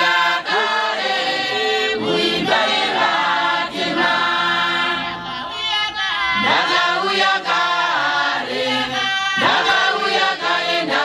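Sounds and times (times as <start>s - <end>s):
women singing a hymn unaccompanied: 0.0s - 11.0s.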